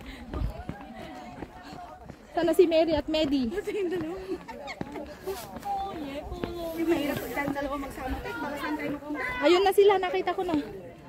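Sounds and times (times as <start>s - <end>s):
chatter of voices: 0.0s - 11.0s
people talking: 0.0s - 11.0s.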